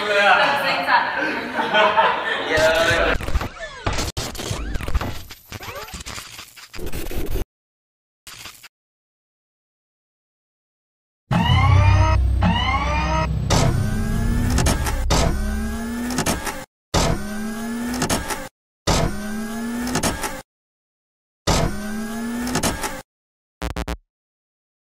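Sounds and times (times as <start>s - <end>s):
rising motor whirring: 11.3s - 16.5s
heavy low rumble: 11.4s - 16.0s.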